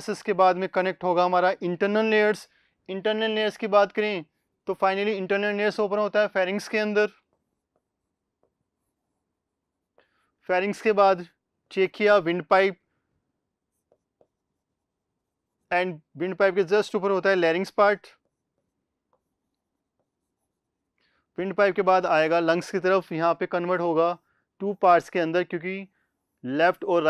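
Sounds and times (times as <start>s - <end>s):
man speaking: 0.0s - 7.1s, 10.5s - 12.8s, 15.7s - 18.2s, 21.4s - 27.0s
stylus tapping on screen: 7.2s - 9.1s, 13.6s - 14.6s.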